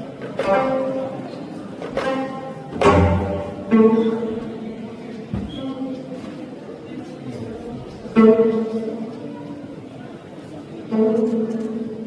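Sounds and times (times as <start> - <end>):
plucked zither notes: 0.4 - 4.6, 8.1 - 9.1, 10.8 - 12.0.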